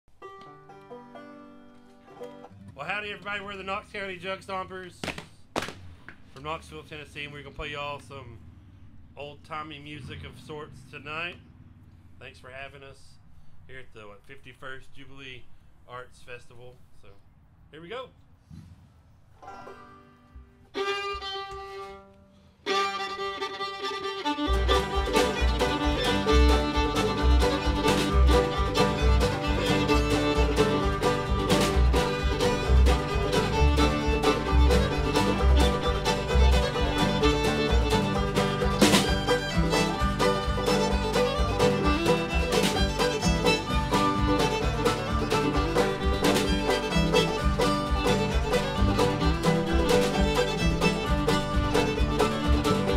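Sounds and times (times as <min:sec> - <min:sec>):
fiddle melody: 0:00.0 - 0:04.7, 0:19.4 - 0:52.9
string band playing: 0:00.0 - 0:08.2, 0:19.4 - 0:52.9
washtub bass beat: 0:24.2 - 0:52.9.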